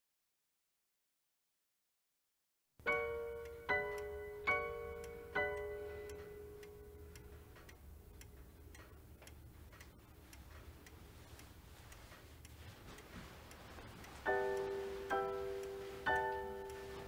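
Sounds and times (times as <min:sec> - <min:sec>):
clock ticking faintly: 0:02.8 - 0:17.0.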